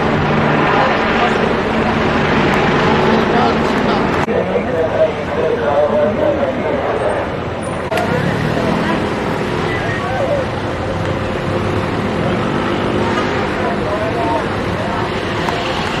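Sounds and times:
street traffic: 0:00.0 - 0:16.0.

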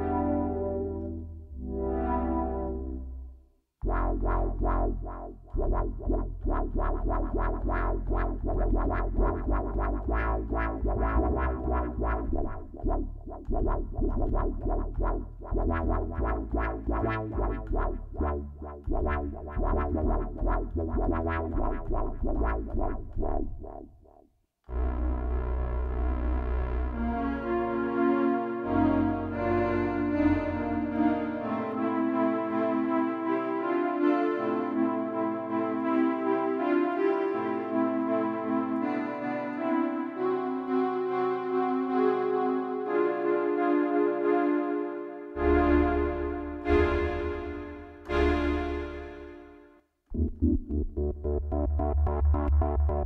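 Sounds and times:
sustained synthesizer chord with bass: 0:00.0 - 0:24.0, 0:24.7 - 0:53.0
short repeated synthesizer notes: 0:00.0 - 0:32.6, 0:45.3 - 0:53.0.

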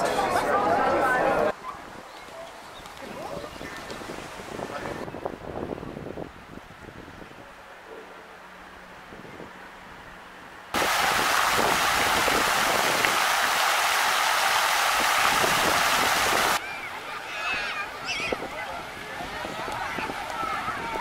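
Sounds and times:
fountain water splashing: 0:10.8 - 0:21.0.

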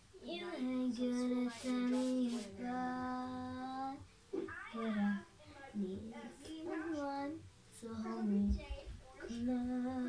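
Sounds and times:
girl singing: 0:00.2 - 0:10.0.

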